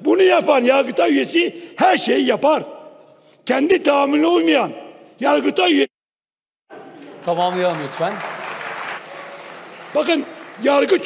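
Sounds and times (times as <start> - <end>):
applause: 6.7 - 11.0.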